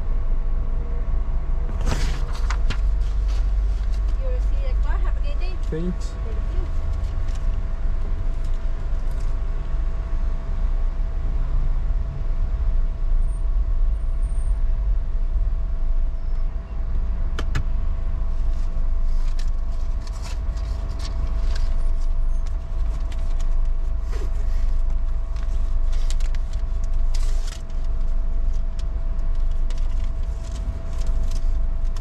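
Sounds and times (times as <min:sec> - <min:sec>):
engine and road rumble: 0:00.0 - 0:32.0
faint constant hum: 0:00.0 - 0:32.0.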